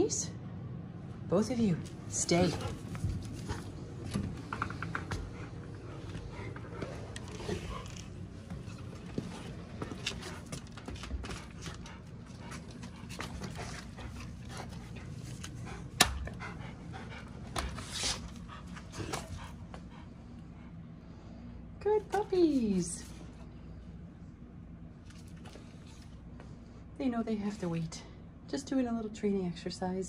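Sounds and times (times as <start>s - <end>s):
dogs panting: 2.1s - 21.0s.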